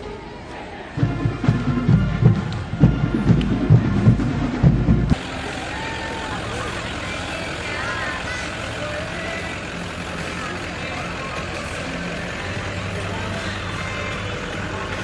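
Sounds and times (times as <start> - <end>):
faint voices of onlookers: 0.0 - 15.0
pickup truck engine running: 1.0 - 15.0.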